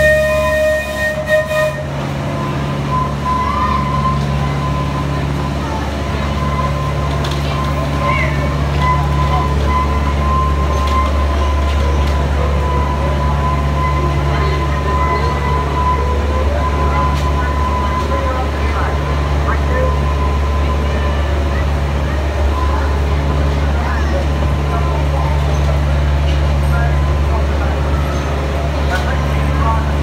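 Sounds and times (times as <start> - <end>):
diesel engine humming: 0.0 - 30.0.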